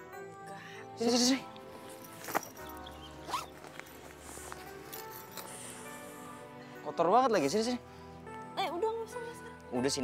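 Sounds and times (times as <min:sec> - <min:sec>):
soft background music: 0:00.0 - 0:10.0
bag handling: 0:01.8 - 0:05.8
backpack zipper opening: 0:02.2 - 0:04.7.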